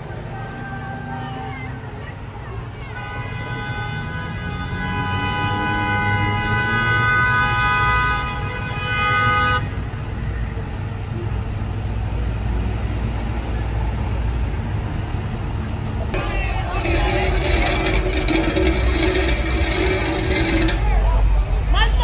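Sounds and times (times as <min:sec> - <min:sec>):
voices: 0:00.0 - 0:04.6, 0:15.9 - 0:22.0
truck engines and traffic rumble: 0:00.0 - 0:22.0
vehicle horn: 0:02.9 - 0:09.8.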